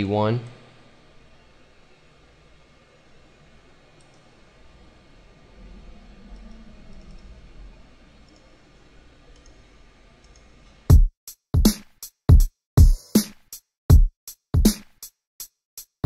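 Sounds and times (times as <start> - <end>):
computer mouse clicks: 4.0 - 4.3, 6.3 - 7.3, 8.2 - 8.5, 9.4 - 9.6, 10.2 - 10.5
low rumble: 5.2 - 8.3.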